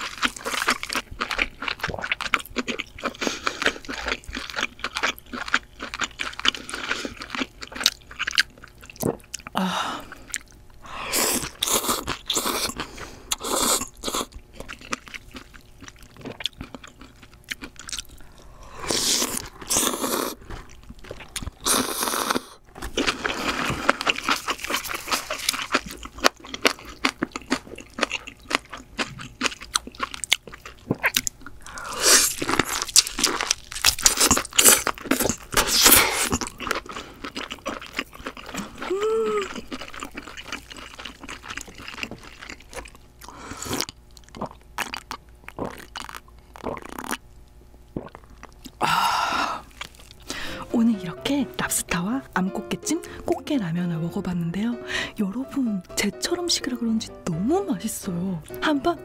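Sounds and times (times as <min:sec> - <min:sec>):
wet crunchy chewing: 0:00.0 - 0:48.8, 0:49.6 - 0:50.5
noodles slurped: 0:17.8 - 0:26.6.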